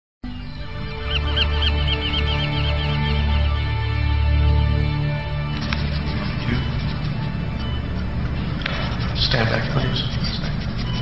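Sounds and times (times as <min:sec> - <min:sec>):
low music drone: 0:00.2 - 0:11.0
bird chirping rapidly: 0:00.3 - 0:04.1, 0:05.4 - 0:11.0.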